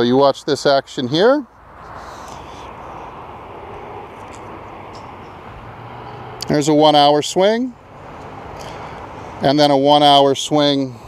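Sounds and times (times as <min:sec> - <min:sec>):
distant engine rushing: 0:01.6 - 0:11.0.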